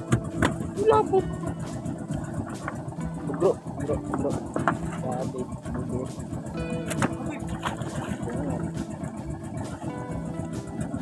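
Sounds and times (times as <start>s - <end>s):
engine humming: 0.0s - 11.0s.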